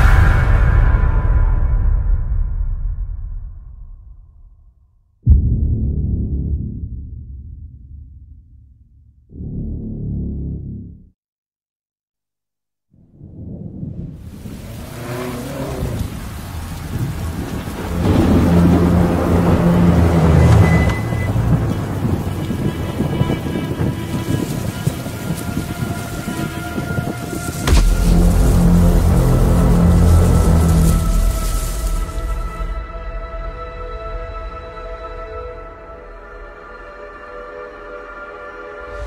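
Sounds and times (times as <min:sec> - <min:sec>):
rolling thunder: 0:13.0 - 0:32.9
sharp thunderclap: 0:13.2 - 0:24.3, 0:27.6 - 0:32.8
rain: 0:13.4 - 0:33.5
dark music drone: 0:15.4 - 0:39.0.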